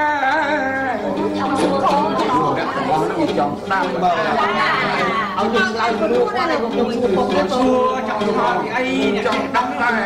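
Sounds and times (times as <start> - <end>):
people talking over each other: 0.4 - 10.0.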